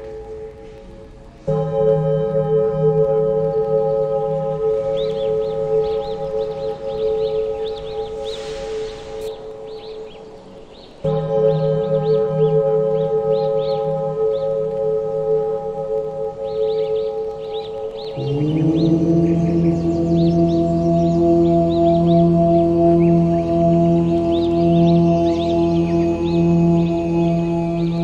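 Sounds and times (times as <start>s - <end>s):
ambient drone music: 0.0s - 28.0s
birds chirping: 0.0s - 28.0s.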